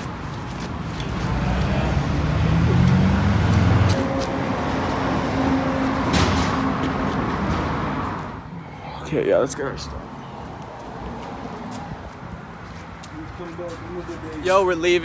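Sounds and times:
vehicle engine hum: 0:00.0 - 0:14.4.

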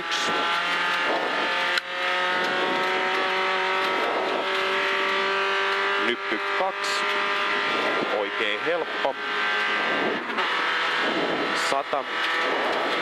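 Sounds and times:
car engine at high revs: 0:00.0 - 0:13.0.

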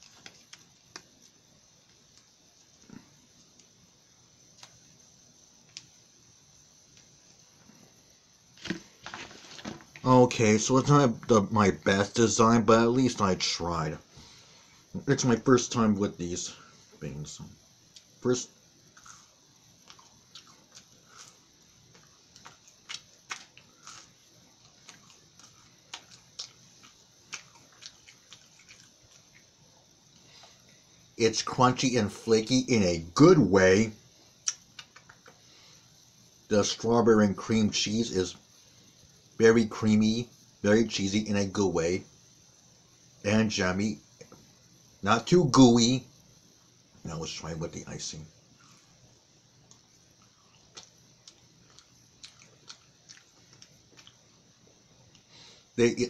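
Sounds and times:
person chewing crunchy pastry: 0:19.0 - 0:29.6, 0:49.6 - 0:55.3
wet mouth clicks: 0:34.4 - 0:35.3.

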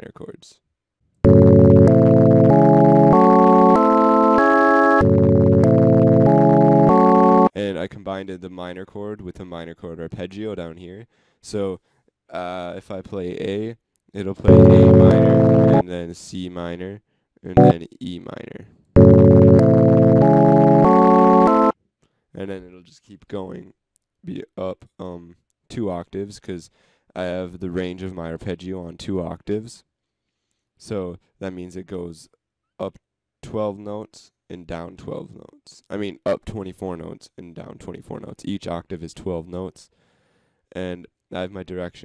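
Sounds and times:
synth minor chord arpeggio: 0:01.3 - 0:07.5, 0:14.5 - 0:15.8, 0:19.0 - 0:21.7.

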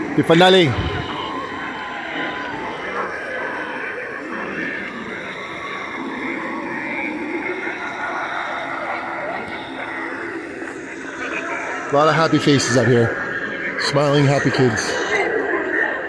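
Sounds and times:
indistinct voices: 0:00.0 - 0:16.0.

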